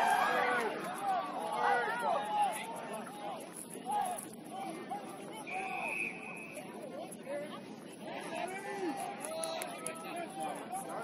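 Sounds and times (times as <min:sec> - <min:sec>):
players and spectators shouting: 0:00.0 - 0:06.0, 0:08.0 - 0:11.0
whistle blast: 0:05.5 - 0:06.6.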